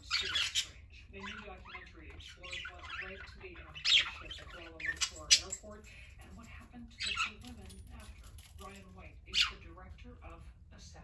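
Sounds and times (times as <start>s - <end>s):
budgerigars chirping and chattering: 0.0s - 5.7s, 6.3s - 9.7s.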